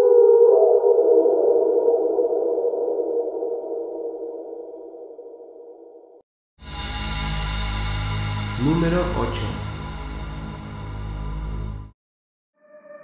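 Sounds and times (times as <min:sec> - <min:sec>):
eerie synthesizer drone: 0:06.6 - 0:12.0.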